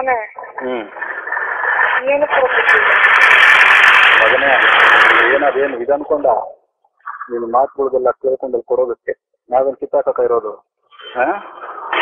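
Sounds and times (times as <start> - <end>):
muffled speech: 0.0 - 1.0, 4.2 - 11.9
loud static hiss: 0.0 - 6.3, 11.0 - 12.0.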